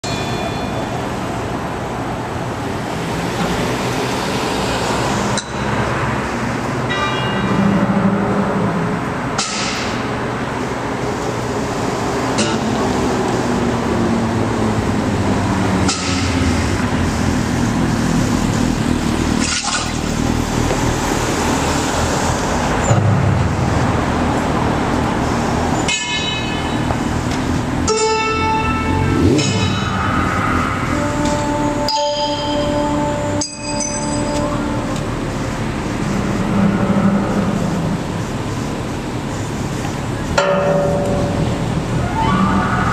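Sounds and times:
bell-like chiming tones: 0.0s - 1.4s, 6.9s - 8.2s, 27.9s - 35.6s
street traffic noise: 0.0s - 42.9s.

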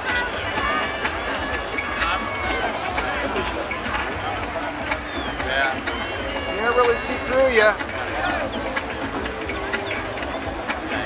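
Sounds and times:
crowd chattering and calling out: 0.0s - 11.0s.

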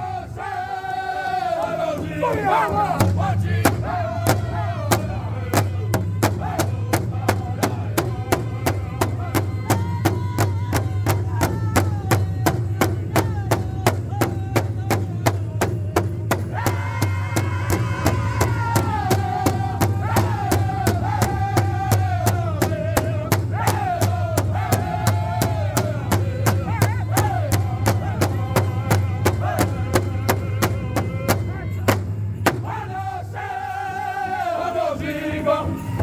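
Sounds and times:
group singing in unison: 0.0s - 36.0s
large hide drum beating: 1.7s - 33.0s.

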